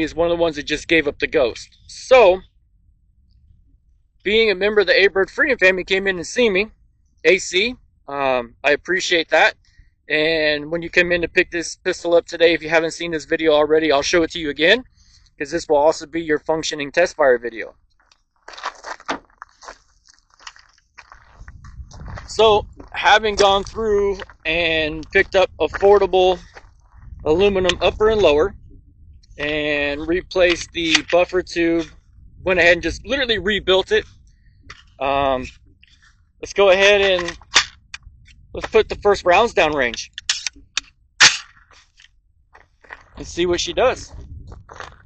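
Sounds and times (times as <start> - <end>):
sharp metallic pistol clack: 40.1 - 41.5.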